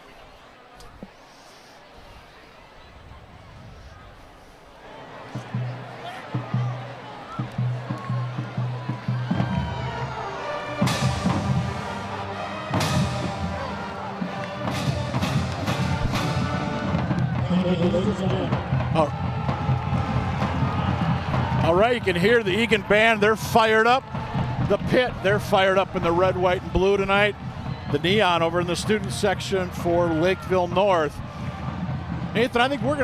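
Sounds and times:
brass chords: 8.2 - 23.5.

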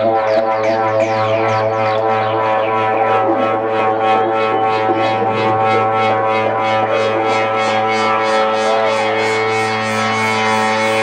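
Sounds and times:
electronic dance music: 1.8 - 11.0.

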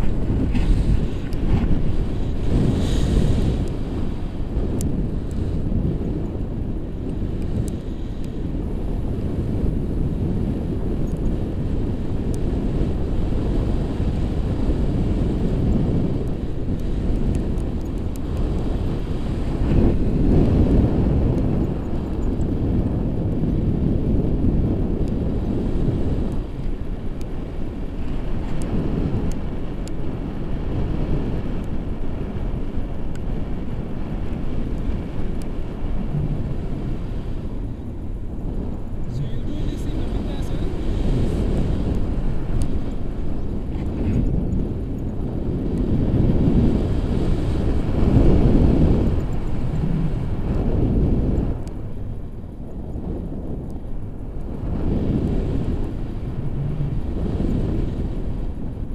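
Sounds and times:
wind buffeting microphone: 0.0 - 58.9.

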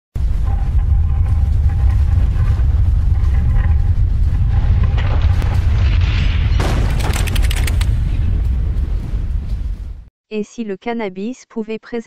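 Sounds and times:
loud deep rumble: 0.2 - 10.1.

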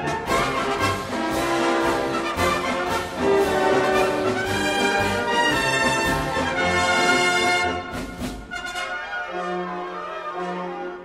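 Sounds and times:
brass band playing: 0.0 - 11.0.

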